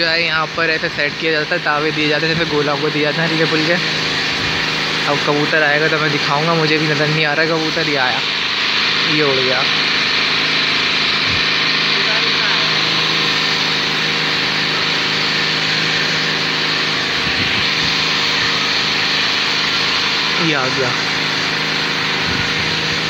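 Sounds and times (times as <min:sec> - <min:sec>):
machine drone with high hiss: 0:00.0 - 0:23.0.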